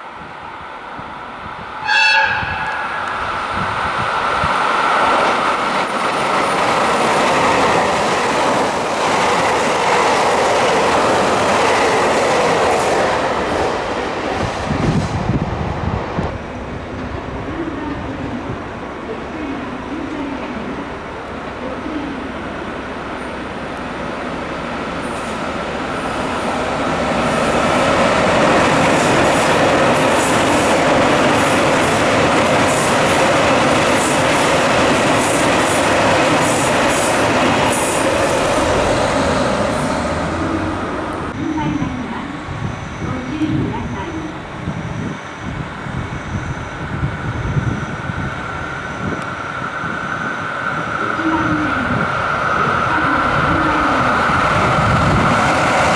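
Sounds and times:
diesel train passing: 0:00.0 - 0:55.9
electric train passing: 0:00.0 - 0:55.9.

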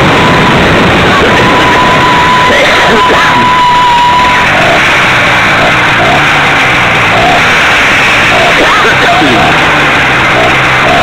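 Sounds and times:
wind rush on microphone: 0:00.0 - 0:10.9
small two-stroke engine running: 0:00.0 - 0:11.0.

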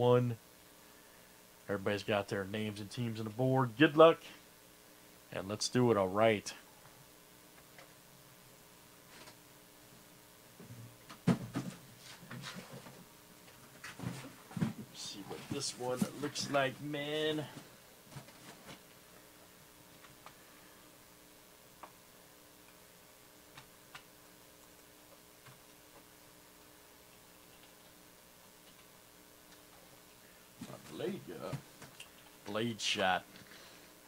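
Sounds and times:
faint steady hum: 0:00.0 - 0:34.0.

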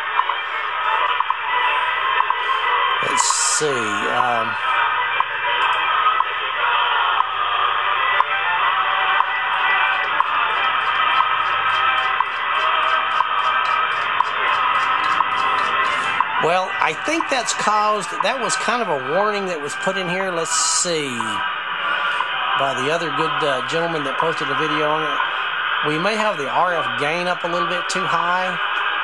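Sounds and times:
interfering radio signal: 0:00.0 - 0:29.0
radio static hiss: 0:03.0 - 0:04.6
time signal radio audio: 0:03.0 - 0:04.8, 0:15.6 - 0:28.7.

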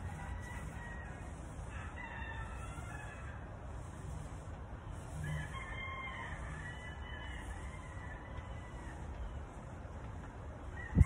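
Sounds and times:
low background rumble: 0:00.0 - 0:11.0
rooster crowing: 0:00.1 - 0:03.4, 0:05.2 - 0:09.0.

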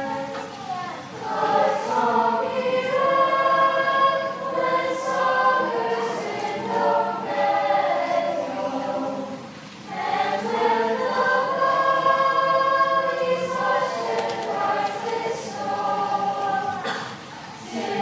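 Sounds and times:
choir singing: 0:00.0 - 0:18.0.

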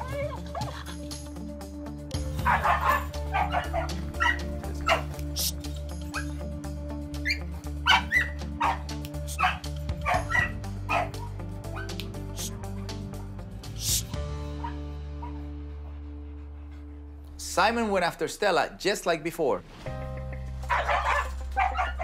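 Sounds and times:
music with steady beat: 0:02.1 - 0:14.6
dog barking: 0:02.4 - 0:05.2, 0:07.3 - 0:12.5, 0:20.7 - 0:22.0.

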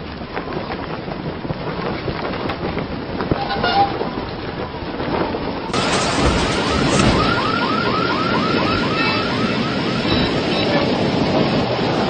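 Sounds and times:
storm wind blowing: 0:00.0 - 0:12.0.

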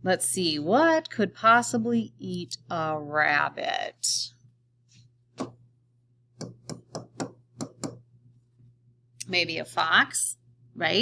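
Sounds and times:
stylus tapping on tablet screen: 0:05.3 - 0:05.6, 0:06.4 - 0:08.0.

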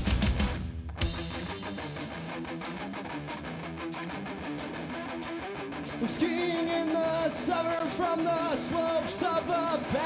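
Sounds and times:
drum track: 0:00.0 - 0:10.0
electric guitar playing chords: 0:00.0 - 0:10.0.

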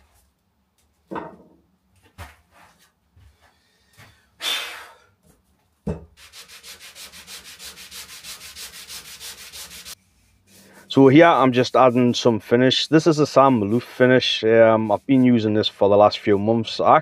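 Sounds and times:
knock: 0:05.8 - 0:06.1
hand rubbing wood: 0:06.2 - 0:17.0.

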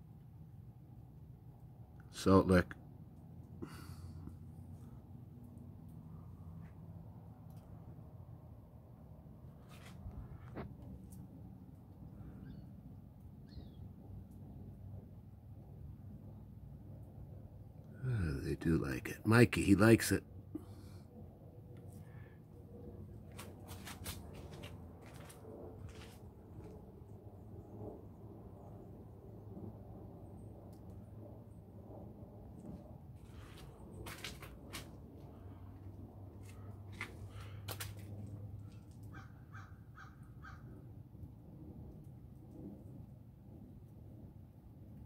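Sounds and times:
low steady hum: 0:00.0 - 0:39.1
bird calling: 0:13.4 - 0:13.8.

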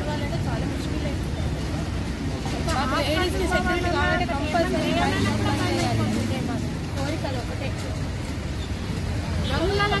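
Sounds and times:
street traffic rumble: 0:00.0 - 0:10.0
woman speaking: 0:02.7 - 0:07.8.

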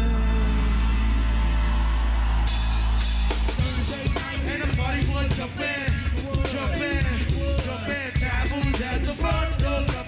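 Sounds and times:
drum kit beat: 0:02.4 - 0:10.0.

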